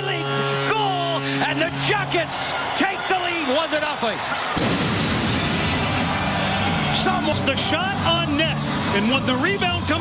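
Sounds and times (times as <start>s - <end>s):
loud crowd din: 0.0s - 10.0s
goal cannon blast: 4.5s - 5.8s.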